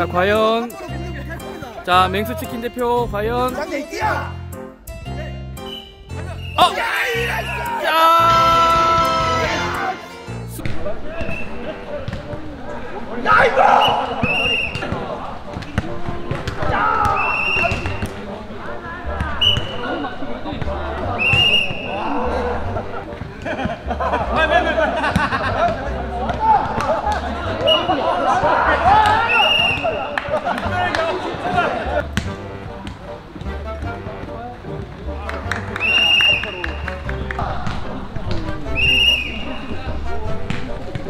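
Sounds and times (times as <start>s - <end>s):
players' voices: 0.0s - 4.4s, 5.0s - 41.0s
ball kicked and bouncing: 12.0s - 12.4s, 13.8s - 18.2s, 25.1s - 27.8s, 31.3s - 35.0s, 37.6s - 38.6s, 40.4s - 41.0s
ball thudding on dirt court: 12.0s - 12.4s.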